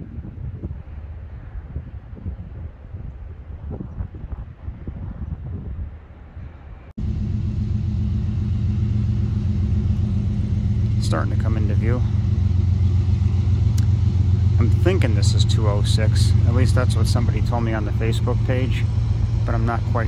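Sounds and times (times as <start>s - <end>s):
wind rumbling on microphone: 0.0s - 20.0s
diesel locomotive engine drone: 6.1s - 20.0s.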